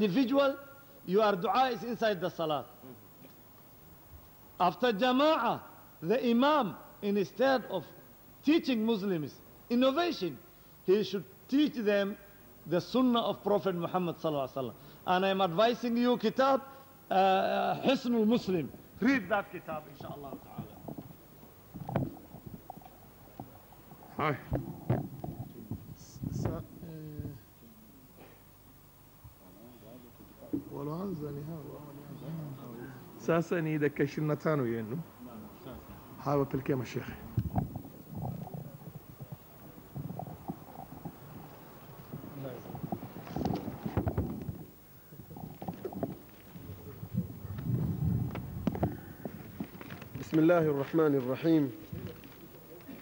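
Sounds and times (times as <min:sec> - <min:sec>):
microphone handling rumble: 0:20.0 - 0:27.4, 0:37.2 - 0:50.5.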